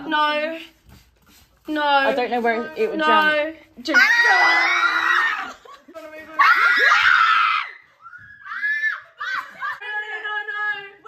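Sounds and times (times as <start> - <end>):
young woman screaming: 6.4 - 9.8.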